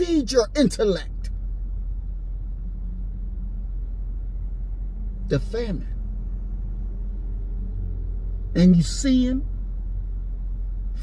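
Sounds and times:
car engine rumbling: 0:00.0 - 0:11.0
faint hum: 0:00.0 - 0:11.0.

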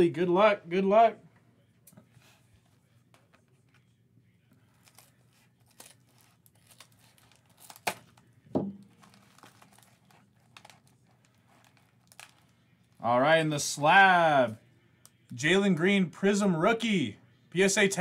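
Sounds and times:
plastic mailer crinkling: 0:08.9 - 0:12.5.

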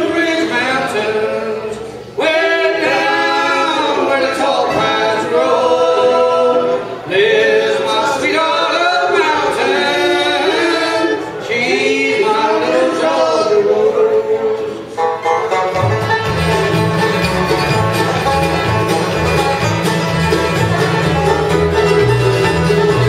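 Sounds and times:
men singing in harmony: 0:00.0 - 0:15.0.

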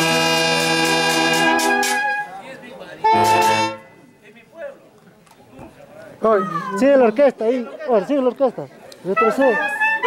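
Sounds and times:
brass band chord: 0:00.0 - 0:02.3, 0:03.0 - 0:04.0
loud horn blast: 0:00.0 - 0:02.3, 0:03.0 - 0:04.0.

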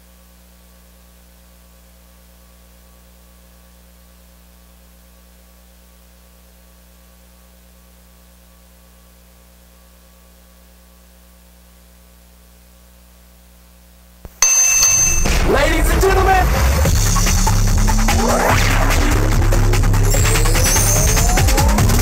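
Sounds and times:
loud music: 0:15.1 - 0:22.0.

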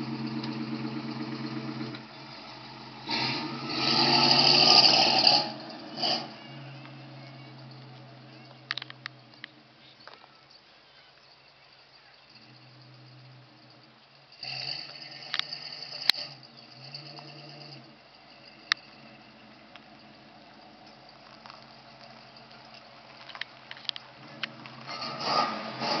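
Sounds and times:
car engine running at low revs: 0:00.0 - 0:10.0, 0:11.7 - 0:26.0
sharp clicks: 0:08.5 - 0:10.2.

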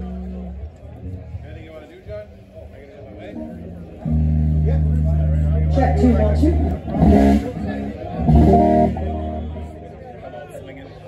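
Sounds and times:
electric guitar chord: 0:03.3 - 0:10.0.

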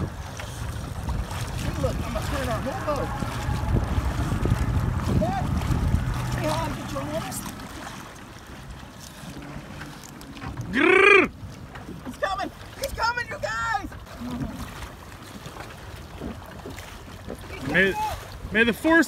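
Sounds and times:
people shouting and whooping: 0:02.6 - 0:04.4, 0:10.7 - 0:11.3, 0:17.7 - 0:18.3.

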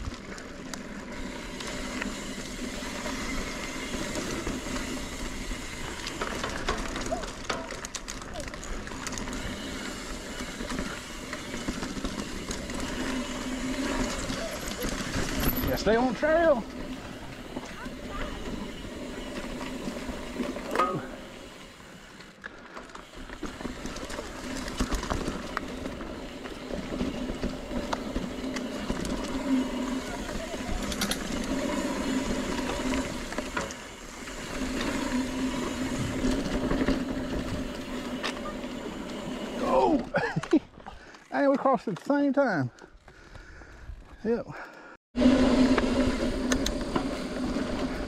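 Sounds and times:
bike tyres on dirt trail: 0:00.0 - 0:48.0
bike knocks and rattles: 0:05.9 - 0:21.2.

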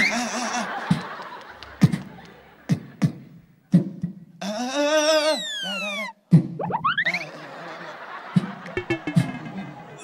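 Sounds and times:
beatboxed kick-drum hit: 0:06.3 - 0:06.8, 0:08.4 - 0:09.9
whistle-like falling sweeps: 0:06.6 - 0:07.3
beatboxer wavering hum: 0:08.4 - 0:10.0.

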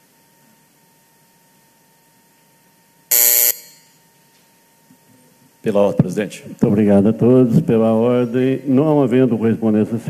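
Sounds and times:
electric buzzer harsh buzz: 0:03.1 - 0:04.0.

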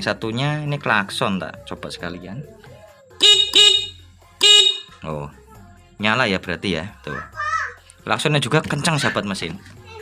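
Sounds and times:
motorcycle horn beeps: 0:03.2 - 0:05.0.

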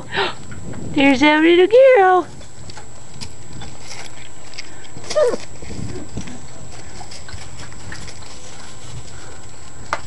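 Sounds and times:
puppy whining: 0:05.0 - 0:06.2
faint low puppy sounds: 0:05.0 - 0:06.6.

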